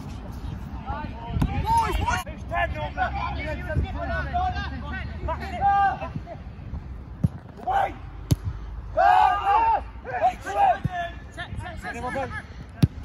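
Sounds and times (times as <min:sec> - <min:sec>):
players shouting: 0:02.8 - 0:06.4, 0:08.8 - 0:13.0
football being kicked: 0:12.8 - 0:13.0.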